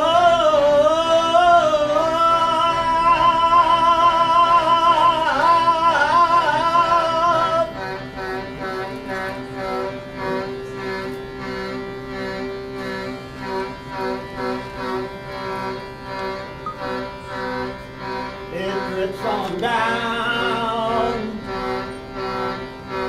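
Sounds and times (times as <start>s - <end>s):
man singing wavering notes: 0.0s - 11.8s, 18.4s - 23.0s
wooden pipes playing chords: 0.0s - 23.0s.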